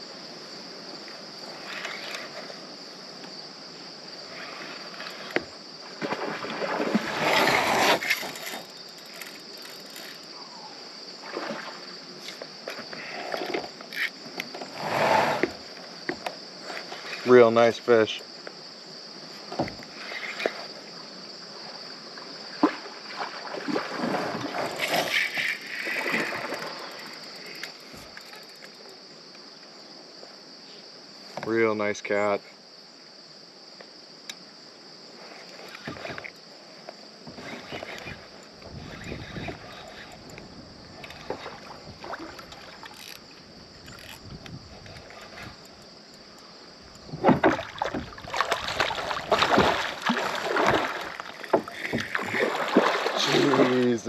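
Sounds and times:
crickets chirring: 0.0s - 54.0s
faint water and handling sounds: 4.3s - 18.2s, 21.5s - 29.0s, 35.2s - 54.0s
water splashing: 5.9s - 9.9s, 11.2s - 12.0s, 22.4s - 28.1s, 41.0s - 43.3s, 47.1s - 54.0s
fishing reel clicking: 42.9s - 43.2s
fish splashing in water: 47.3s - 53.8s.

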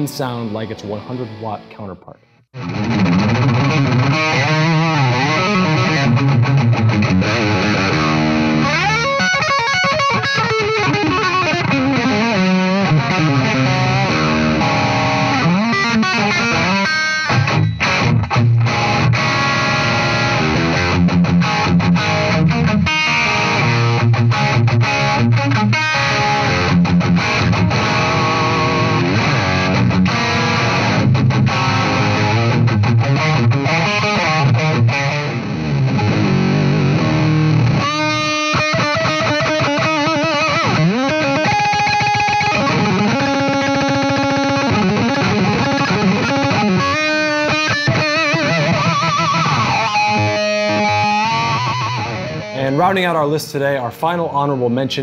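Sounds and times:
overdriven electric guitar riff: 0.0s - 55.0s.

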